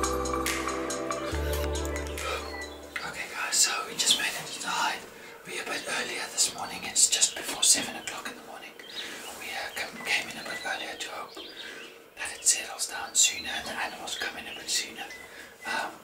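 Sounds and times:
man whispering: 0:02.2 - 0:11.4, 0:12.2 - 0:16.0.

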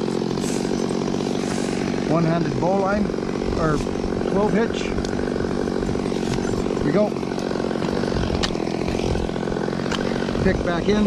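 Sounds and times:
chainsaw idling: 0:00.0 - 0:11.0.

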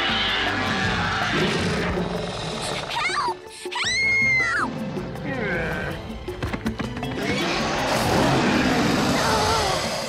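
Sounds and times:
cartoon dinosaurs roaring: 0:00.0 - 0:03.2, 0:07.2 - 0:10.0.

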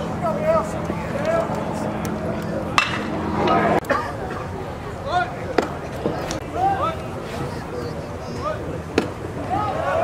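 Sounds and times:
low hum: 0:00.0 - 0:09.5
crowd chattering: 0:00.0 - 0:10.0.

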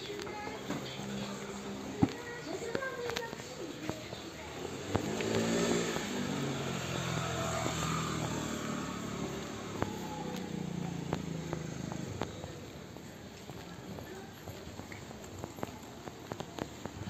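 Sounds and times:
scooter engine revving: 0:04.3 - 0:13.0.

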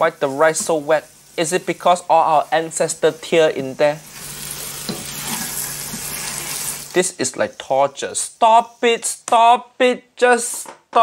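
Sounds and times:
rice sizzling in a wok: 0:00.0 - 0:09.2.

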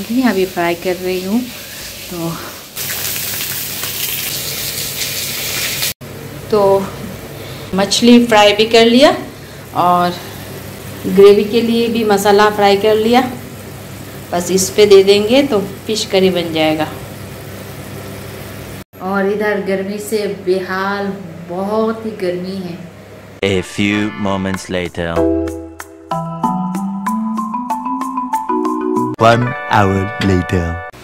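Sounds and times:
fish sizzling in hot oil: 0:00.0 - 0:06.0, 0:09.4 - 0:18.8.

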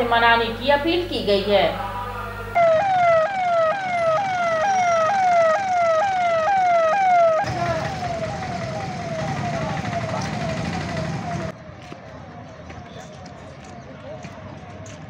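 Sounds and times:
street noise: 0:00.0 - 0:15.0
electronic police siren wailing: 0:01.8 - 0:11.6.

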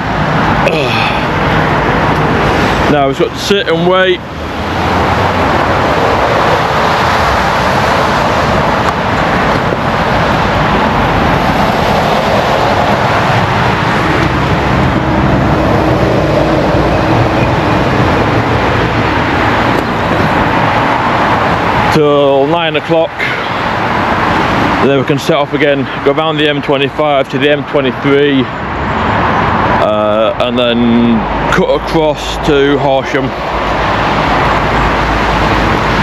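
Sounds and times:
low engine hum: 0:00.0 - 0:26.0
road traffic roar: 0:00.0 - 0:36.0.

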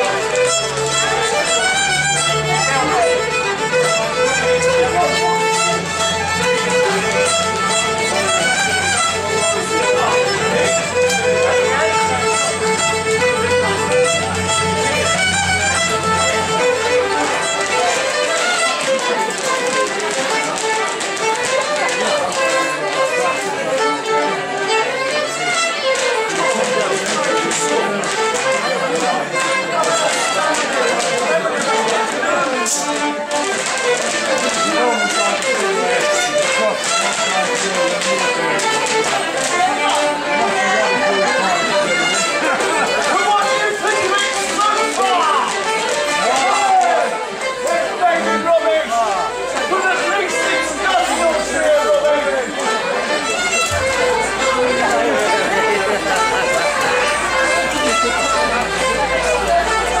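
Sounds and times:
fiddles playing dance tune: 0:00.0 - 1:00.0
people talking: 0:00.0 - 1:00.0
sharp taps: 0:52.8 - 0:54.6.

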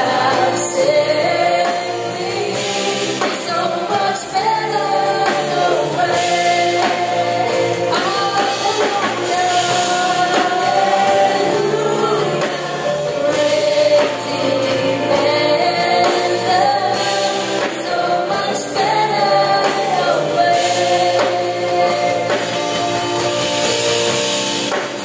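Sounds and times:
band accompaniment with steady beat: 0:00.0 - 0:25.0
group singing worship song: 0:00.0 - 0:25.0.

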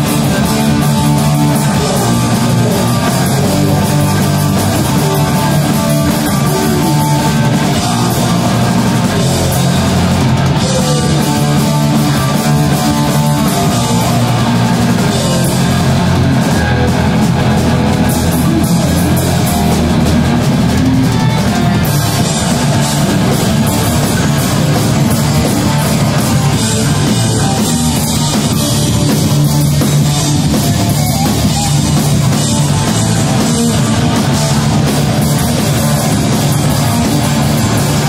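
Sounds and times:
bass guitar: 0:00.0 - 0:38.0
distorted electric guitar: 0:00.0 - 0:38.0
drum kit: 0:00.0 - 0:38.0.

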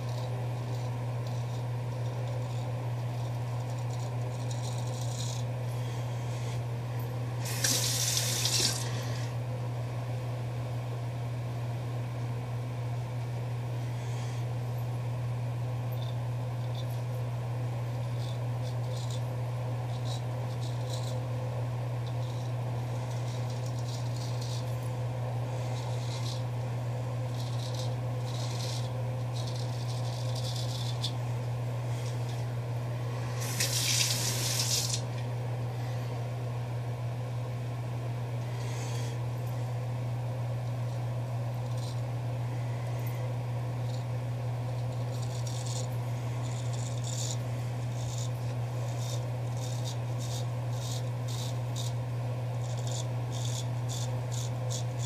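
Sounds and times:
razor scraping stubble: 0:00.0 - 0:06.6, 0:07.4 - 0:09.4, 0:16.0 - 0:36.0, 0:40.6 - 0:55.0
steady low hum: 0:00.0 - 0:55.0
water running from tap: 0:07.4 - 0:09.0, 0:33.4 - 0:35.0.

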